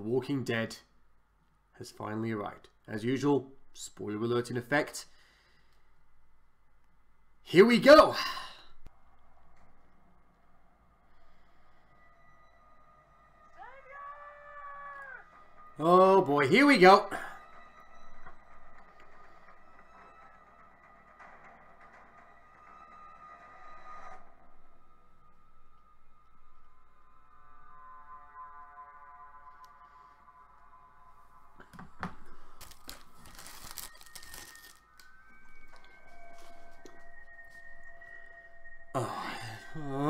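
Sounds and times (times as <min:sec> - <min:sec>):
tense music score: 0:00.0 - 0:40.0
whistled tune: 0:33.3 - 0:40.0.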